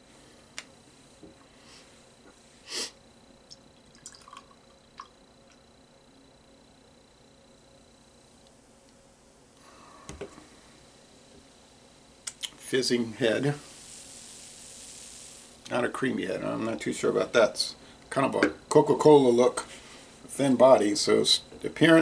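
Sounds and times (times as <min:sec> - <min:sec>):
brief hiss: 0:02.6 - 0:03.0, 0:13.4 - 0:15.8
beer pouring into a glass: 0:03.7 - 0:05.2
can set down on table: 0:10.1 - 0:10.5.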